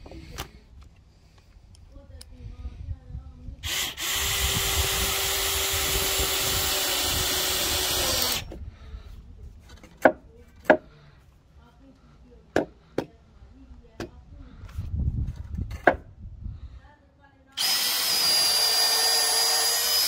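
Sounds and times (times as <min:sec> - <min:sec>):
drill driving screw into wood: 0:03.6 - 0:08.6, 0:17.6 - 0:20.0.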